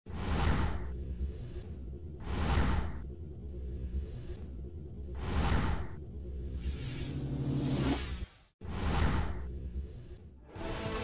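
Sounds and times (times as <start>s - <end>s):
low music bed: 9.5s - 11.0s.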